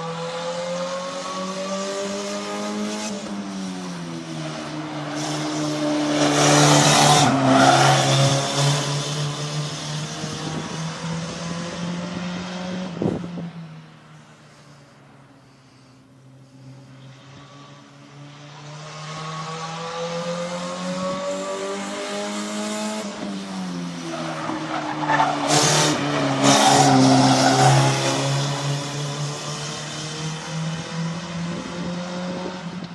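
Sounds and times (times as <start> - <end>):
race car engine driving away: 0.0 - 14.0, 16.6 - 32.9.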